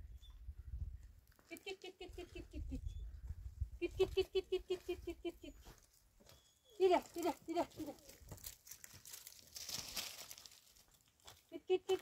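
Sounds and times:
footsteps on stony ground: 3.0 - 12.0.

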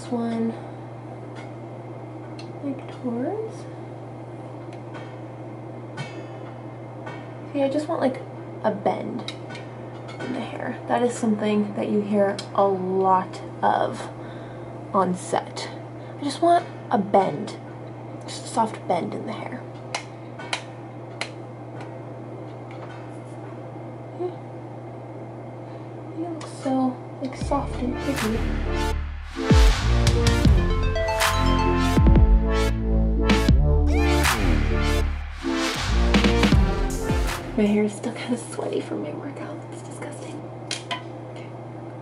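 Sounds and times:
steady low hum: 0.0 - 42.0
low hum: 27.0 - 38.3.

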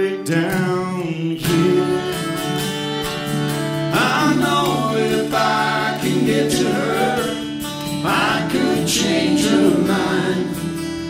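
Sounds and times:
acoustic guitars playing country: 0.0 - 11.0
fiddle playing: 0.0 - 11.0
sliding melody line: 0.3 - 11.0.

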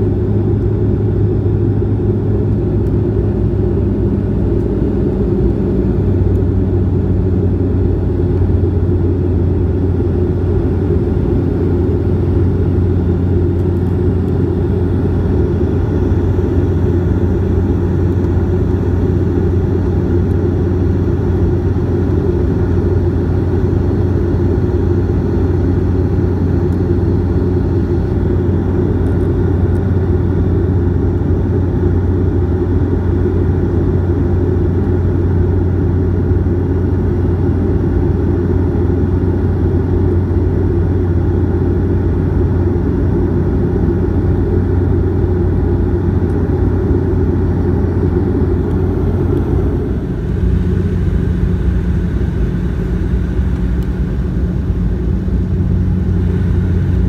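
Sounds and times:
turboprop cabin drone: 0.0 - 57.0.

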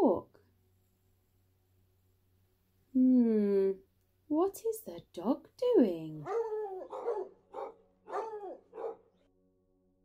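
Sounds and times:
dog barking: 6.2 - 9.2.

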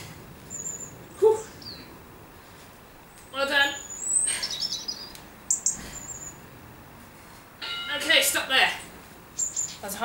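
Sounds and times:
small birds chirping: 0.4 - 2.0, 3.0 - 6.6, 7.9 - 10.0.

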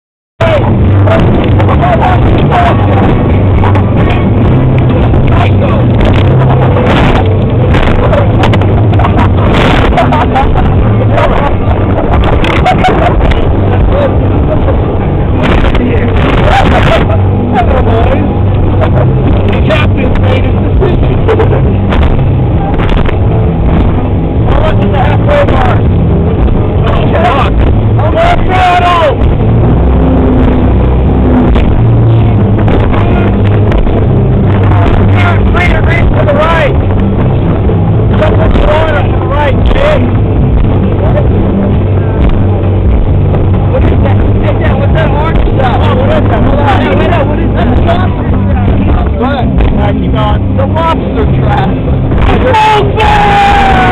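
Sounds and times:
indistinct voices: 0.4 - 53.9
powerboat engine running: 0.4 - 53.9.

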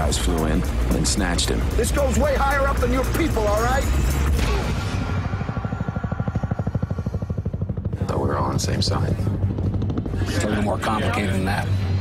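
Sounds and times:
helicopter rotor beating: 0.0 - 12.0.

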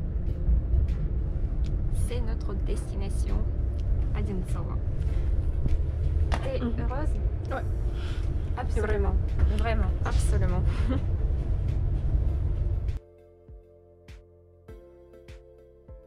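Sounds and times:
train rumble inside carriage: 0.0 - 13.0.

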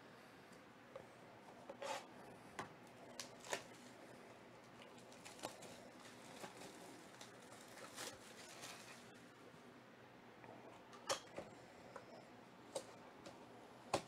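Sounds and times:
plastic wrap crinkling and tearing: 3.2 - 3.9, 4.9 - 9.1.

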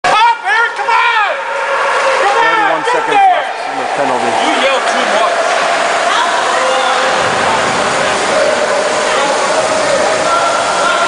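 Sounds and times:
people talking and calling out: 0.0 - 11.0
rink background noise: 0.0 - 11.0
man's low voice: 3.7 - 5.2.

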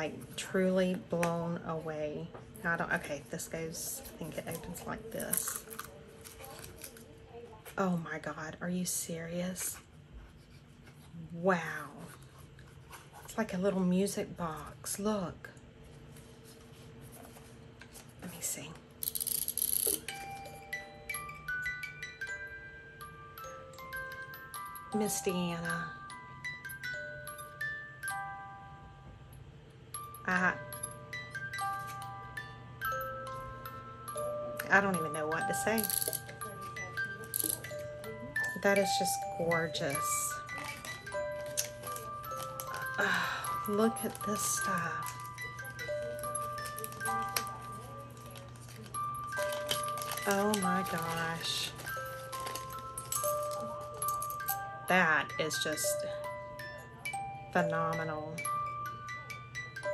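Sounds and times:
music box tinkling melody: 19.0 - 59.9.

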